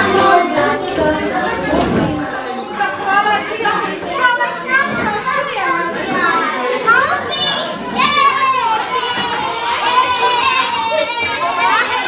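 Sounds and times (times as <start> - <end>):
small children chattering: 0.0 - 12.0.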